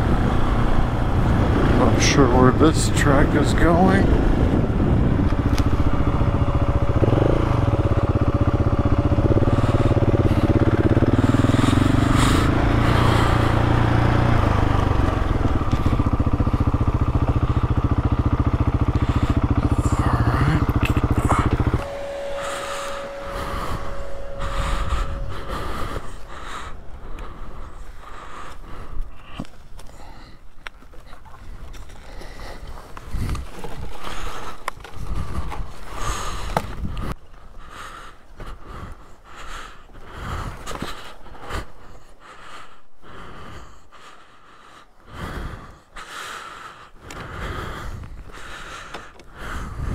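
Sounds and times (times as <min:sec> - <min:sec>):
motorcycle engine running: 0:00.0 - 0:49.9.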